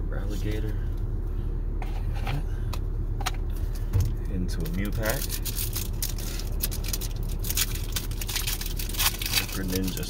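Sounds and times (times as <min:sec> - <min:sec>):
car engine idling: 0:00.0 - 0:10.0
trading cards and foil crinkling: 0:03.6 - 0:10.0.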